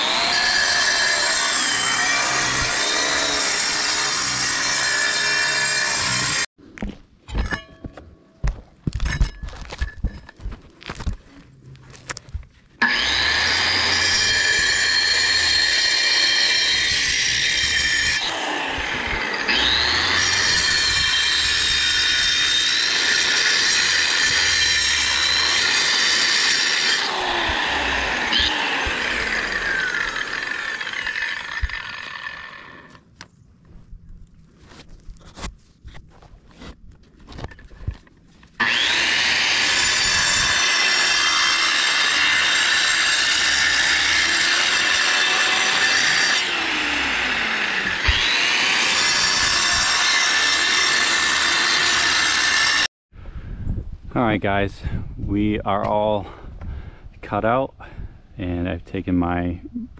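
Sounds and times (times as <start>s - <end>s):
angle grinder cutting mortar: 0.0s - 6.5s, 12.8s - 33.0s, 38.6s - 52.9s.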